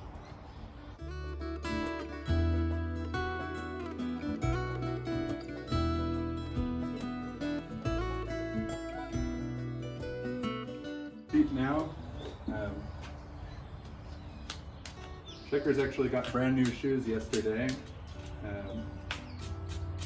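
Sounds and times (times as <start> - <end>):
low bass notes: 1.0 - 14.2
plucked string notes: 1.1 - 11.8.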